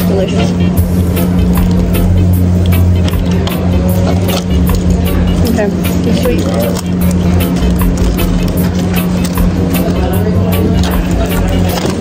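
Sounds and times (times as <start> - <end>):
music with steady beat and bass: 0.0 - 12.0.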